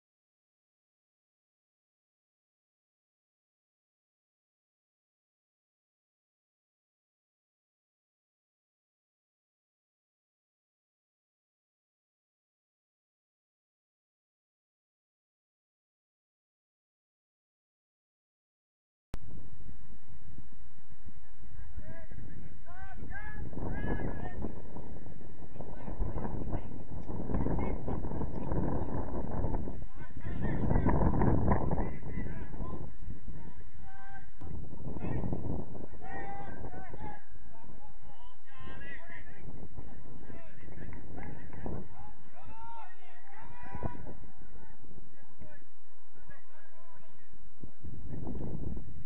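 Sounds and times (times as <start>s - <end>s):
wind rumbling on microphone: 19.2s - 49.0s.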